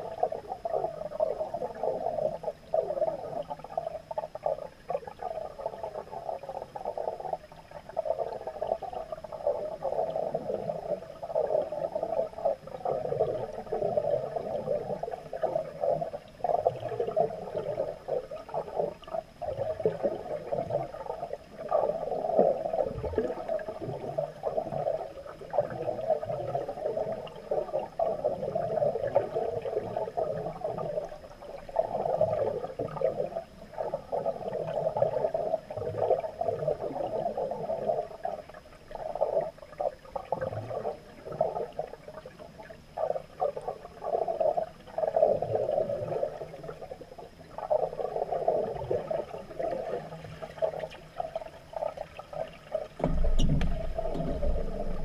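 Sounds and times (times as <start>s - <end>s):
diver's regulator bubbling exhalation: 42.9s - 55.0s.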